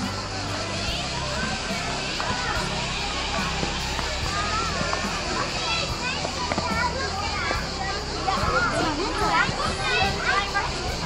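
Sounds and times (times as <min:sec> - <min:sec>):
children playing and calling out: 0:00.0 - 0:11.0.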